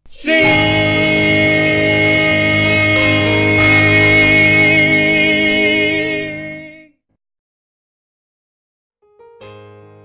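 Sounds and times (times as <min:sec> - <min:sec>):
voices singing in harmony: 0:00.0 - 0:06.9.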